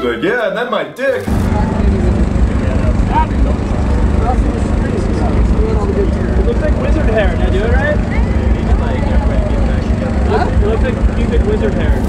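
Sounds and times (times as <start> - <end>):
faint voices: 1.2 - 12.0
machine humming: 1.2 - 12.0.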